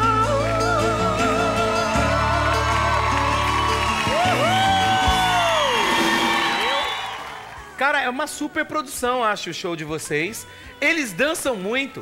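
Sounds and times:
live band music with singing: 0.0 - 9.2
voices whooping: 1.2 - 7.8.

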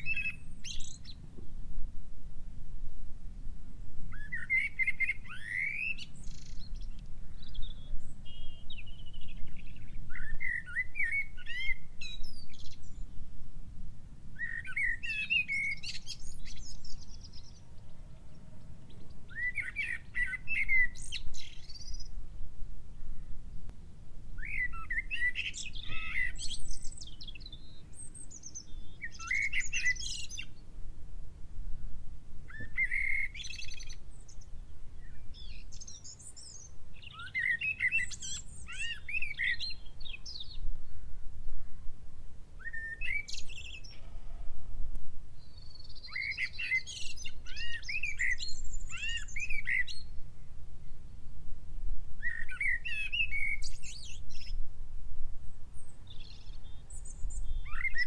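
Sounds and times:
low steady background rumble: 0.0 - 37.4
songbirds chirping: 0.0 - 58.0.

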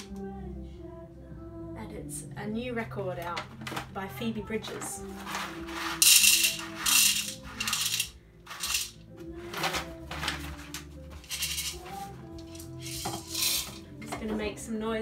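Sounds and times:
soft background music: 0.0 - 15.0
coffee beans rattling into bowl: 5.2 - 9.0, 9.6 - 13.8.

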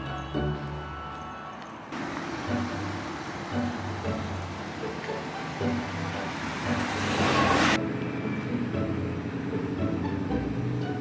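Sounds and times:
soft background music: 0.0 - 11.0
road vehicle passing: 1.6 - 11.0.

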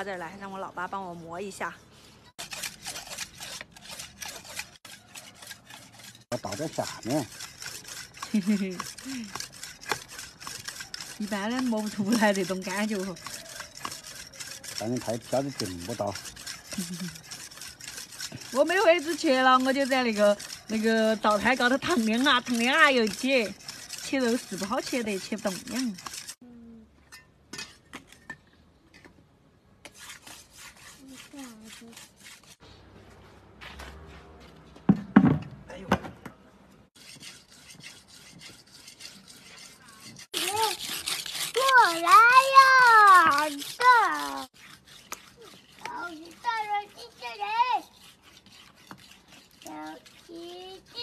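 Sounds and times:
whetstone rasping on steel blade: 2.4 - 26.4, 37.0 - 51.0.

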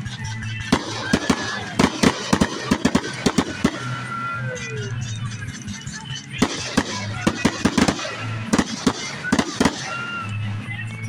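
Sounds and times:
fireworks bangs: 0.2 - 5.0, 6.4 - 10.5.

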